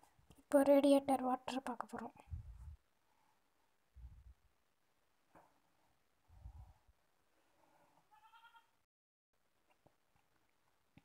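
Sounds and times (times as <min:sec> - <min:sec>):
faint bleat-like animal call: 0:08.1 - 0:08.8.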